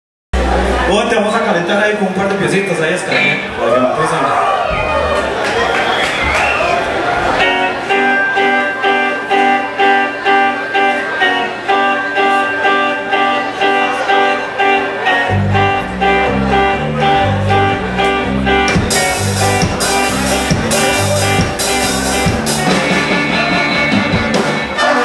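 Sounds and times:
bass guitar: 0.4s - 1.4s, 2.2s - 3.7s, 4.4s - 25.0s
guitar chord pattern: 7.4s - 25.0s
drums with cymbals: 18.7s - 24.7s.

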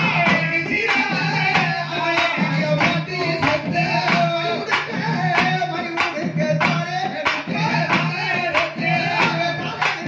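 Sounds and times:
drum strokes: 0.0s - 10.0s
man singing devotional song: 0.0s - 10.0s.

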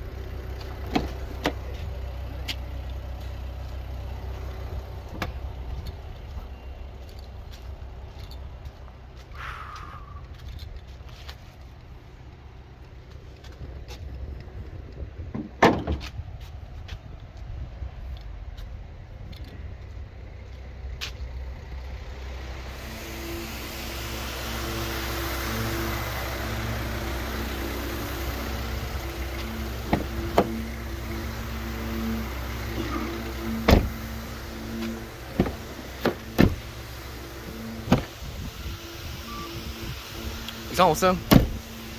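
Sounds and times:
car engine running: 0.0s - 16.7s, 17.4s - 41.9s.

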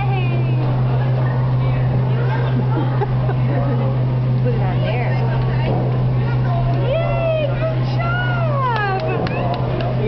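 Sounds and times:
faint background chatter: 0.0s - 10.0s
steady low hum: 0.0s - 10.0s.

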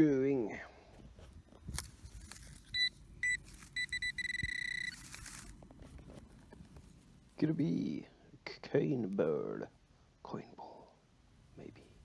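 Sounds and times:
rustling of handling: 0.9s - 7.6s
metal detector pinpointer beeping: 2.7s - 5.3s.

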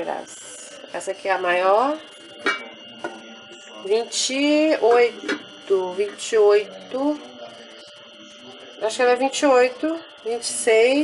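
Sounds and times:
pot lid clinking: 2.4s - 3.2s.

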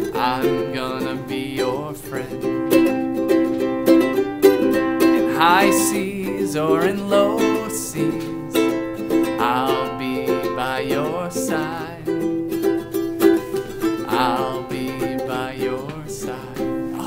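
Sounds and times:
man singing wordless notes: 0.0s - 2.6s, 5.2s - 12.4s, 13.8s - 17.0s
ukulele strumming: 0.0s - 17.0s.

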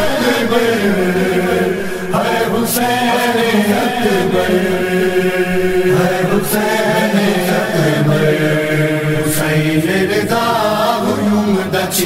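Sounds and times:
man chanting a lament: 0.0s - 12.0s.

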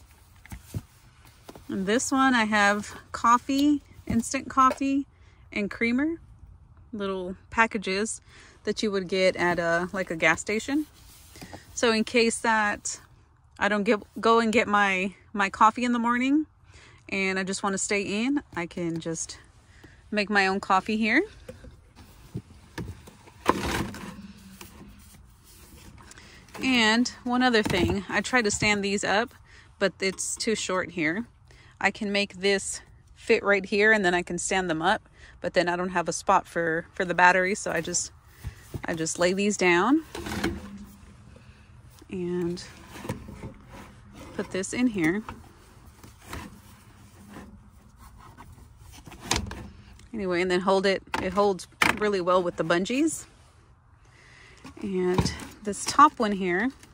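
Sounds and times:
items rubbing and knocking on plastic: 20.6s - 29.1s, 37.5s - 41.2s, 42.2s - 49.7s
basket scraping rustle: 22.0s - 28.8s, 42.4s - 49.8s.

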